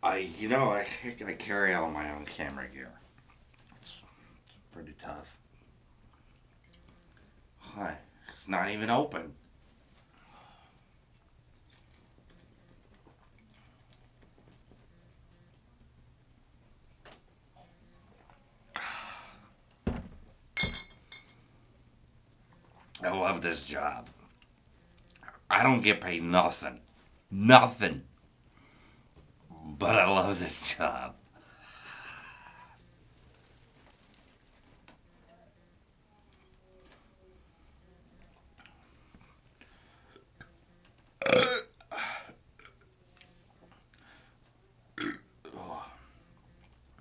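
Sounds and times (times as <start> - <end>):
breathy hiss: 18.7 - 19.6
man burping: 41.2 - 42.7, 45.0 - 46.0.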